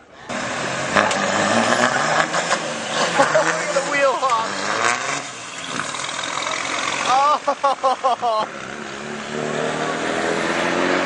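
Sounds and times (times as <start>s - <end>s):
vehicle engine running: 0.2s - 10.0s.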